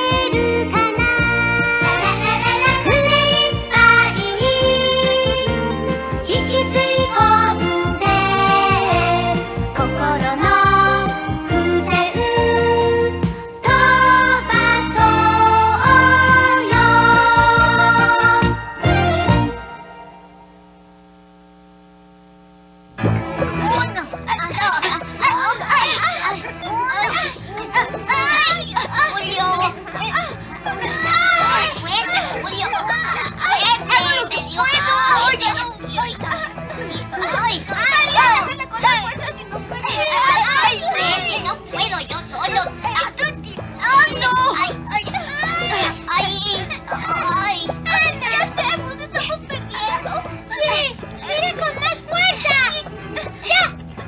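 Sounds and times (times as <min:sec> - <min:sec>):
children shouting and cheering: 0:00.0 - 0:05.6, 0:23.7 - 0:53.8
background music: 0:00.0 - 0:20.8, 0:23.0 - 0:54.0
faint steady hum: 0:17.2 - 0:23.0.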